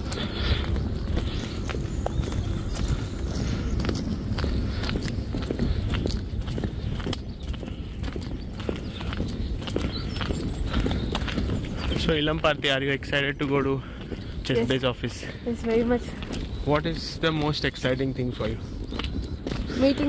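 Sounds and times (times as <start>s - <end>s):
footsteps on pavement: 0.0s - 20.0s
steady low rumble: 0.0s - 20.0s.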